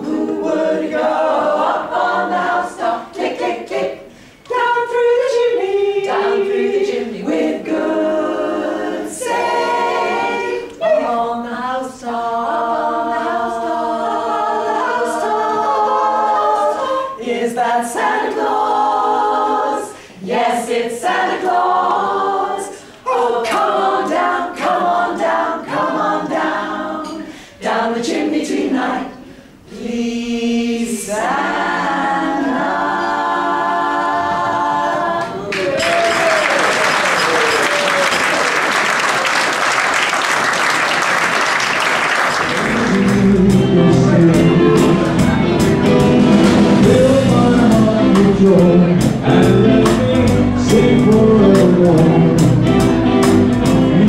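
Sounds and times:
women singing in harmony: 0.0 - 35.5
audience applauding: 35.5 - 43.3.

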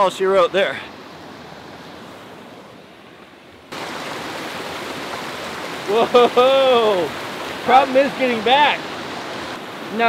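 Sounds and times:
waterfall rushing: 3.7 - 10.0.

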